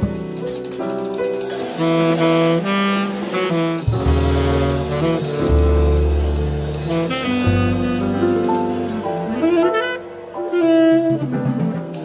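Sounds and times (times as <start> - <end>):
jazz rhythm section: 0.0 - 12.0
saxophone melody: 1.8 - 12.0
low bass notes: 3.6 - 12.0.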